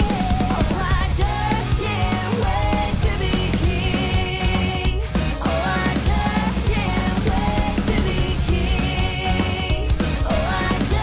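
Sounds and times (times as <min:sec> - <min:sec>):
drum kit beat: 0:00.0 - 0:11.0.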